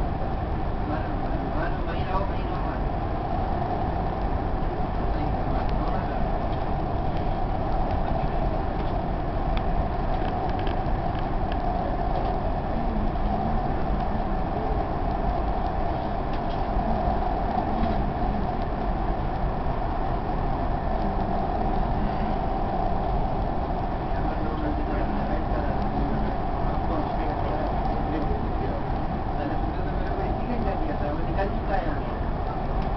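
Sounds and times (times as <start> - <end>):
mid-pitched hum: 0.0 - 32.9
train rumble inside carriage: 0.0 - 32.9
faint clicks: 8.8 - 12.4.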